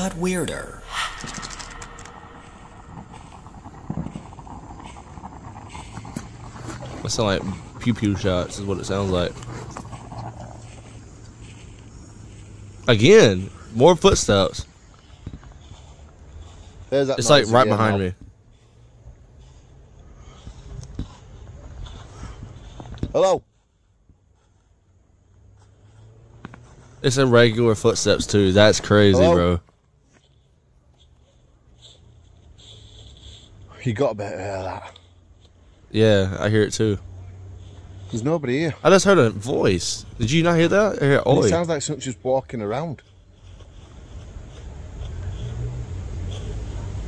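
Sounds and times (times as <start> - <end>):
woodland ambience: 0.0 - 47.0.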